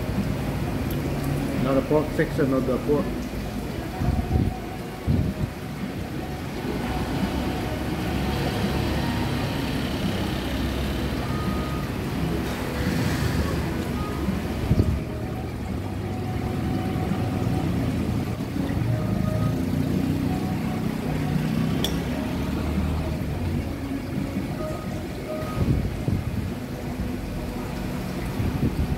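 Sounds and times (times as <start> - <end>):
restaurant background noise: 0.0 - 28.9
street traffic rumble: 0.0 - 28.9.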